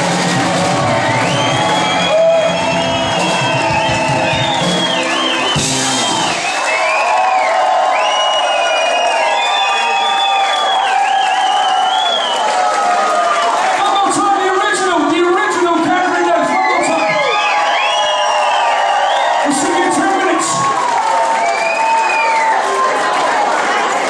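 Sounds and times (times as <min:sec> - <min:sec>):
live band playing: 0:00.0 - 0:06.9
crowd cheering: 0:00.0 - 0:24.0.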